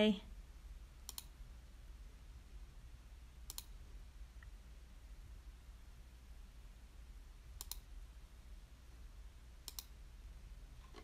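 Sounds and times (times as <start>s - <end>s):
faint low hum: 0.0s - 11.0s
double clicks: 1.1s - 1.3s, 3.5s - 3.8s, 7.6s - 7.8s, 9.6s - 9.9s.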